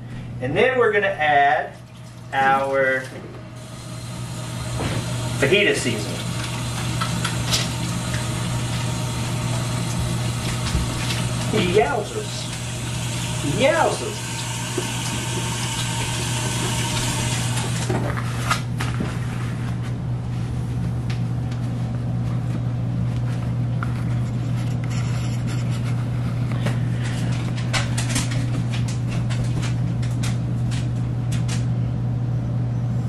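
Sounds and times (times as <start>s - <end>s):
faucet running over hands: 3.6s - 17.9s.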